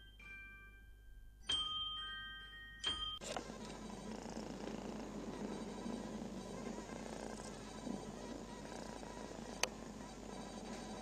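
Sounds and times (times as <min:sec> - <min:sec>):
cat purring: 0:03.2 - 0:11.0.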